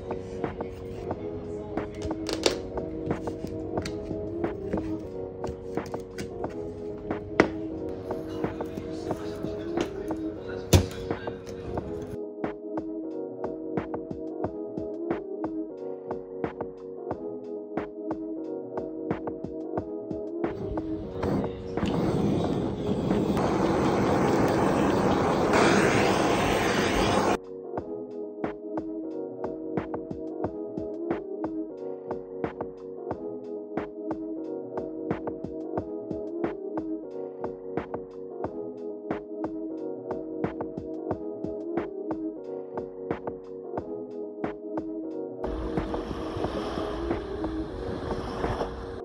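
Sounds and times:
gas torch hissing: 20.6s - 27.4s, 45.5s - 49.0s
wind buffeting microphone: 20.6s - 27.4s.

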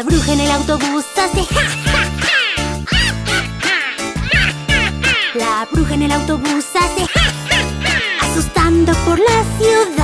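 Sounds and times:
upbeat children's song: 0.0s - 10.0s
cartoon witch cackling: 1.5s - 5.6s, 6.9s - 8.5s.

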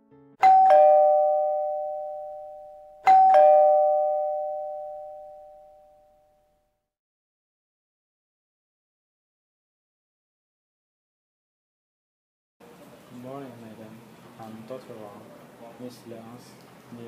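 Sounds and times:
two-tone doorbell chime: 0.4s - 6.7s.

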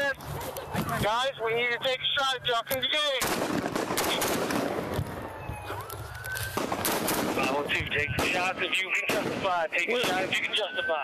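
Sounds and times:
gunshot bangs: 3.2s - 5.0s, 6.6s - 10.5s
police siren: 4.6s - 11.0s.

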